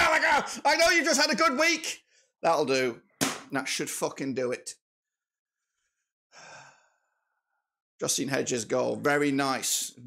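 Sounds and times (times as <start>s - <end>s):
man sighing: 6.3s - 7.0s.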